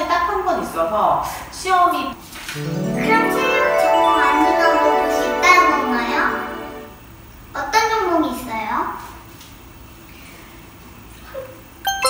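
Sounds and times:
bright ringing chime: 2.6s - 7.0s.

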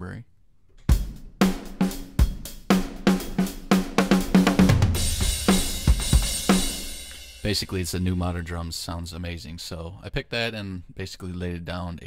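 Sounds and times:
drum kit groove: 0.8s - 9.0s
crash cymbal ringing: 5.0s - 8.2s.

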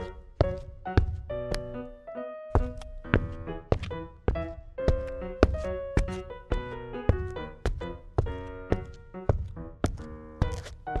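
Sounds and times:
light cartoon background music: 0.0s - 11.0s.

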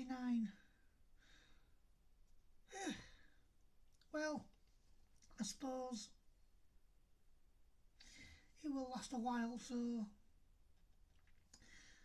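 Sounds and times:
man sighing: 2.7s - 3.4s.

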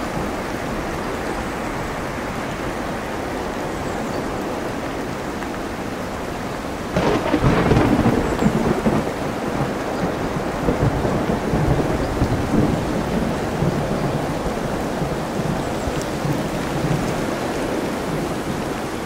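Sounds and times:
steady rain: 0.0s - 19.0s
thunderclap rumbling: 6.9s - 19.0s.

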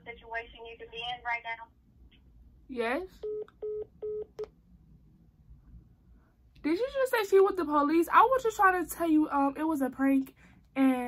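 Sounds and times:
phone beeps: 3.2s - 4.5s.

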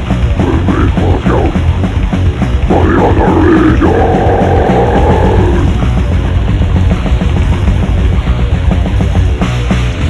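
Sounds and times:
distorted guitars: 0.0s - 10.0s
fast drumming: 0.0s - 10.0s.

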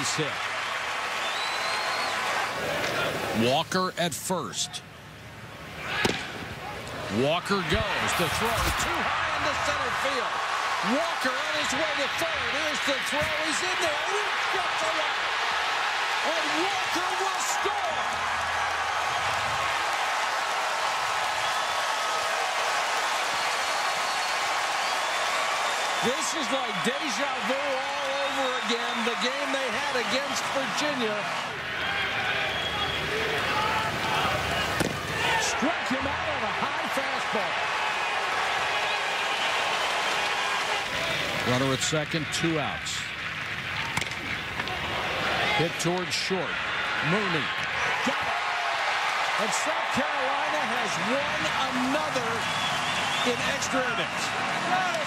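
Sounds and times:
crowd cheering and applauding: 0.0s - 3.2s, 7.5s - 41.8s, 42.4s - 55.0s.

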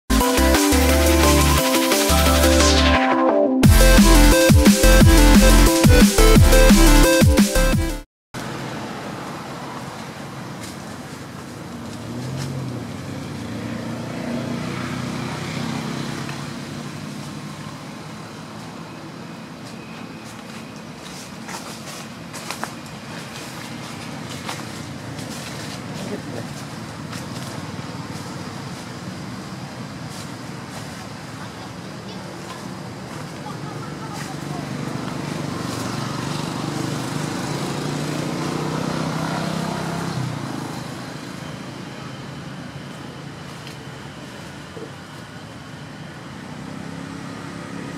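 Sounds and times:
outdoor background noise: 8.4s - 47.9s
faint voices: 31.2s - 35.4s.

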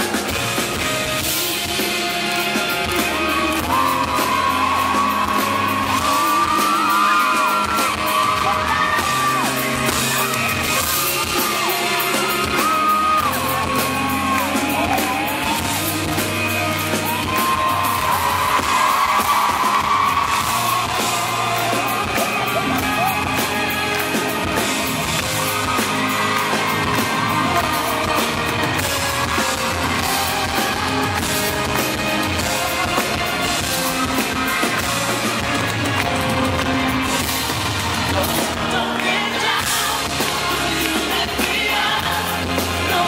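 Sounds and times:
crowd shouting and whooping: 0.0s - 43.0s
live pop-rock band: 0.0s - 43.0s
person singing: 0.1s - 43.0s.

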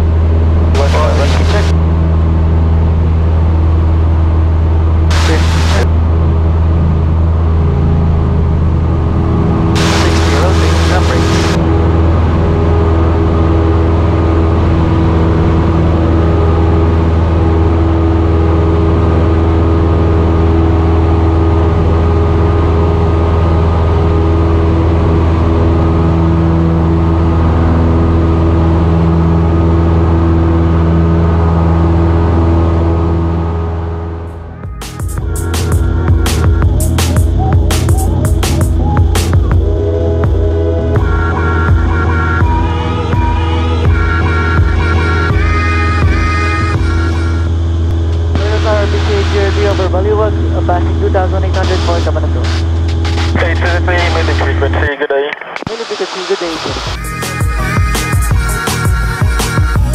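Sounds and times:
light aircraft engine drone: 0.0s - 59.9s.

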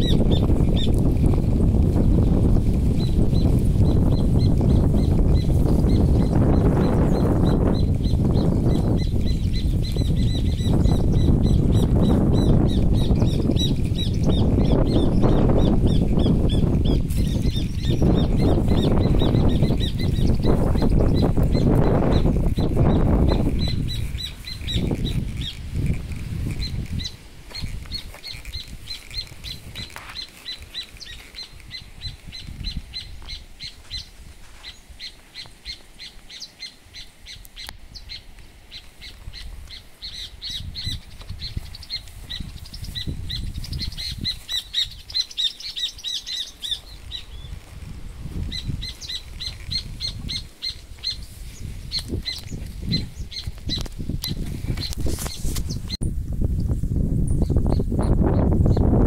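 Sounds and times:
bird chirping: 3.0s - 56.0s.

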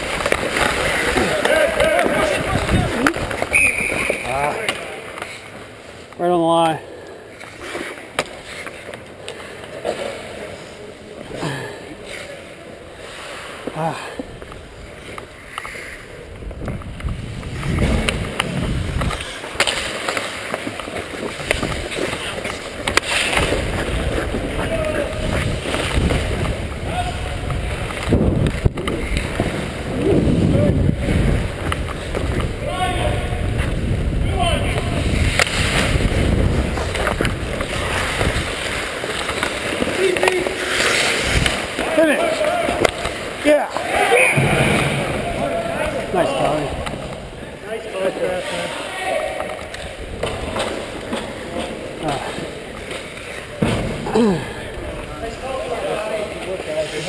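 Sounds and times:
skate blades scraping ice: 0.0s - 6.1s, 7.3s - 47.3s, 47.9s - 54.4s, 55.0s - 57.0s
hockey sticks and puck clacking: 0.0s - 57.0s
players shouting: 0.6s - 4.9s, 41.7s - 47.1s.

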